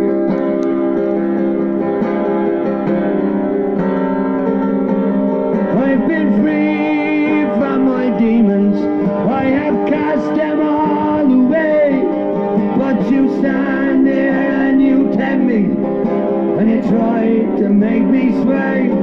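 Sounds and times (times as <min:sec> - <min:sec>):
acoustic guitar strumming: 0:00.0 - 0:19.0
man singing: 0:05.7 - 0:15.9, 0:16.5 - 0:19.0.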